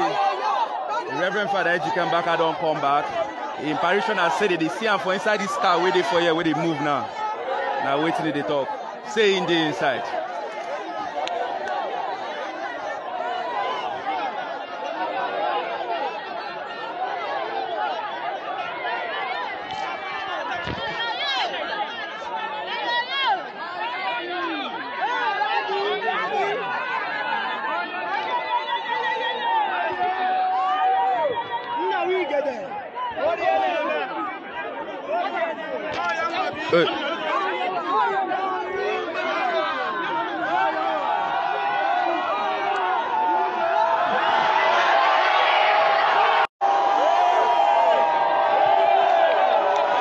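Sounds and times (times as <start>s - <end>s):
crowd talking: 0.0s - 50.0s.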